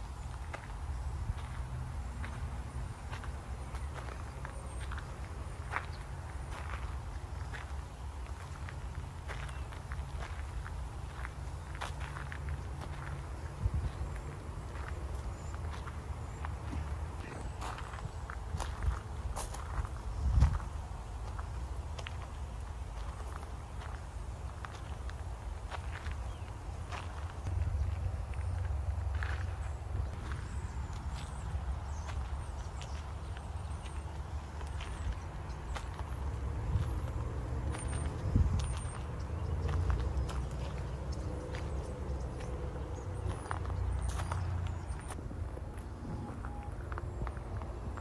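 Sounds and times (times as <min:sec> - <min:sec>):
footsteps on gravel: 0:00.0 - 0:48.0
steady low rumble: 0:00.0 - 0:48.0.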